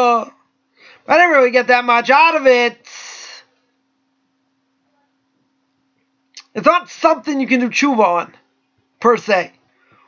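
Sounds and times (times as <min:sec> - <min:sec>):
faint low hum: 0:00.0 - 0:10.0
man talking: 0:01.1 - 0:03.5, 0:06.4 - 0:08.4, 0:09.0 - 0:09.6.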